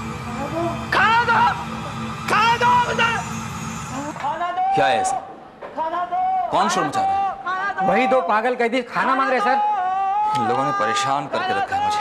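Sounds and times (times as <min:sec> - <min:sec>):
steady low hum: 0:00.0 - 0:04.7.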